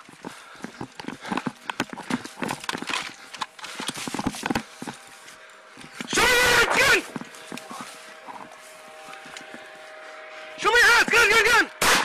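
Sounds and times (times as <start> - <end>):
gear jostling: 0.0 - 6.3
running footsteps: 0.0 - 11.6.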